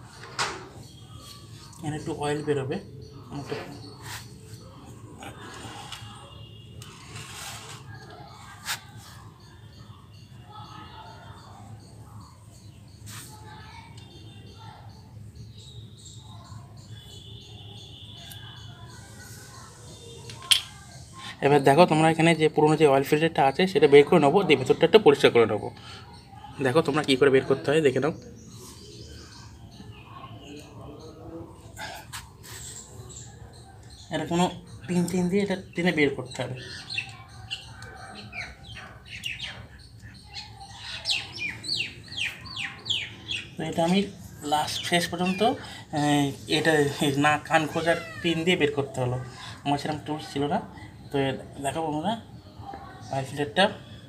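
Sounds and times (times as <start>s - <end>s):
small birds chirping: 0.0s - 54.0s.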